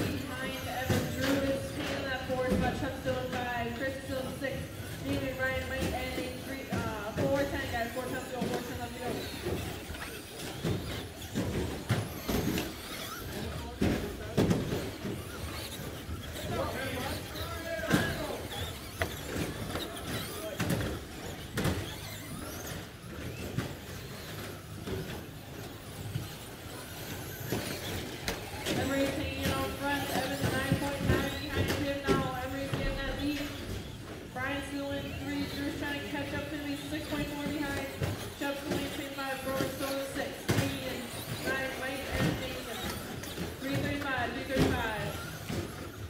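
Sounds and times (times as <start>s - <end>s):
electric motors whining: 0.0s - 46.0s.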